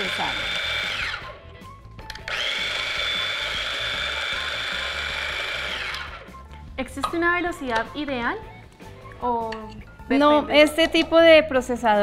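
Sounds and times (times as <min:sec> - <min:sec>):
food processor motor whine: 0:00.0 - 0:01.4, 0:02.1 - 0:06.4.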